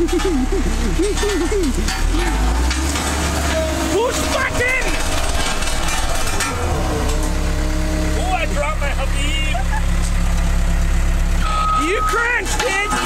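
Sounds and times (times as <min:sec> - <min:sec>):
road roller diesel engine: 0:00.0 - 0:13.0
steel drum rolling over gravel: 0:01.2 - 0:08.4.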